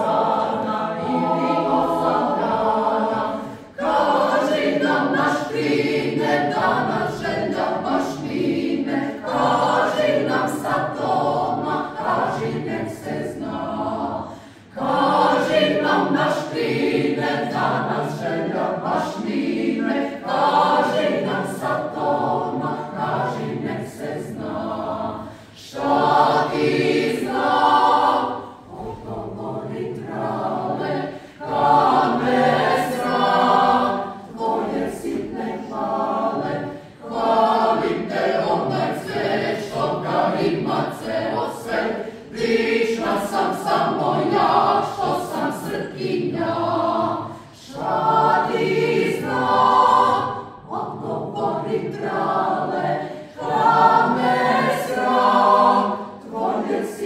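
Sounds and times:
mixed choir singing a cappella: 0:00.0 - 0:57.0.

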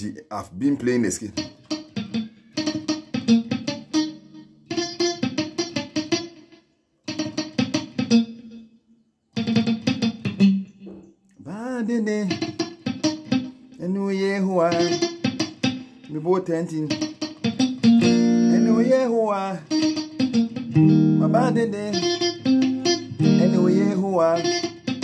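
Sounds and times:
electric guitar picking single notes: 0:00.6 - 0:25.0
man singing: 0:11.4 - 0:12.6, 0:13.8 - 0:15.1, 0:16.0 - 0:17.0, 0:18.2 - 0:19.8, 0:21.2 - 0:22.4, 0:23.0 - 0:24.7.

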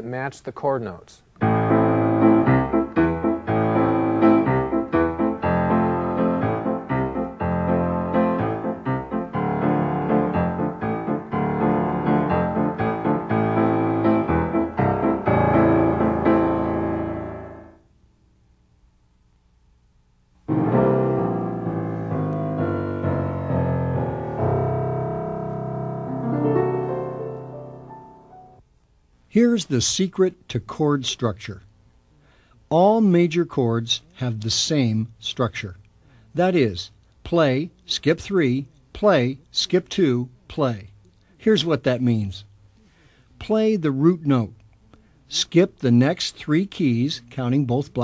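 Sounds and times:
piano chords: 0:01.4 - 0:17.8, 0:20.4 - 0:28.6.

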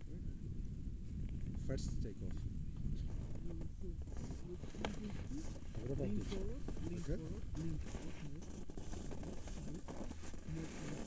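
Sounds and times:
wind buffeting microphone: 0:00.0 - 0:11.0
faint voices: 0:01.6 - 0:11.0.

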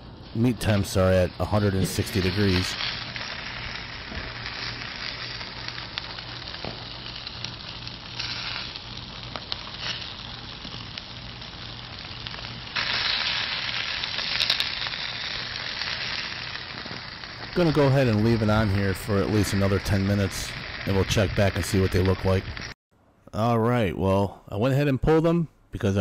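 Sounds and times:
meat sizzling on grill: 0:00.0 - 0:22.8.

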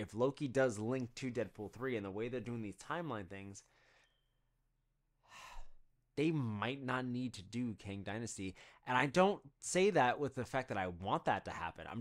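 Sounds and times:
man breathing in: 0:03.7 - 0:04.2, 0:05.2 - 0:05.8.

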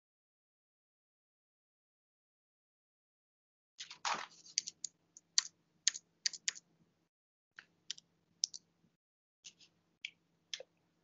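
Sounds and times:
computer keys clicking: 0:04.5 - 0:06.6, 0:07.9 - 0:08.6.

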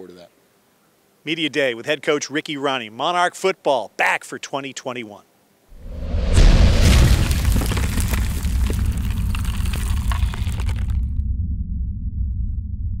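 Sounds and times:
deep low rumble: 0:05.8 - 0:13.0
cracking stone crackling: 0:06.8 - 0:11.2.

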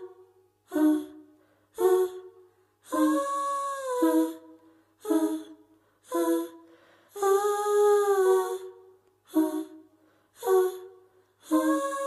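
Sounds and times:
woman humming: 0:00.7 - 0:01.2, 0:02.9 - 0:06.6, 0:07.2 - 0:09.8, 0:10.4 - 0:10.9.

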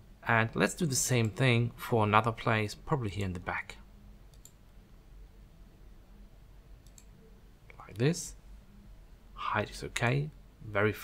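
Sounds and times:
computer mouse clicks: 0:04.3 - 0:04.8, 0:06.8 - 0:08.0.

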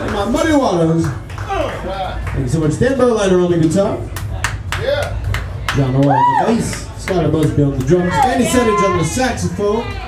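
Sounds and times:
scattered hand claps: 0:00.0 - 0:02.7, 0:03.6 - 0:08.3.

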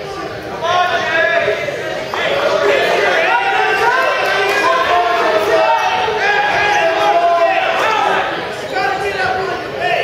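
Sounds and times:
people shouting in a gym: 0:00.0 - 0:10.0.

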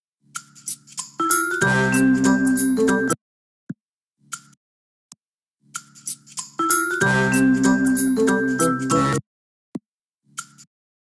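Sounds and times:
cartoon menu music: 0:00.6 - 0:03.2, 0:06.0 - 0:09.2.

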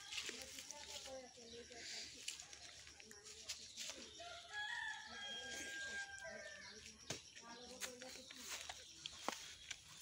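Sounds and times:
rooster crowing: 0:04.2 - 0:06.7.

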